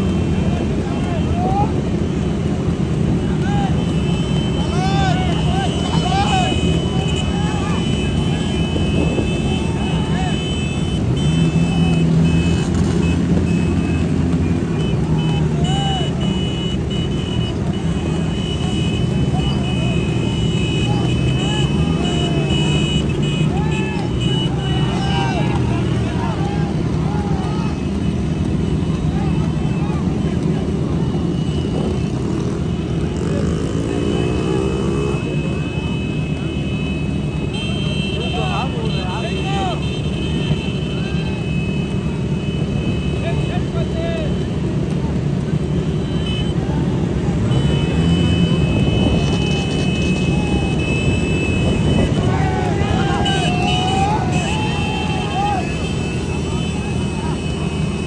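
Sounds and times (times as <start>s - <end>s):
motorcycle engines revving: 0.0s - 58.0s
voices shouting: 0.0s - 58.0s.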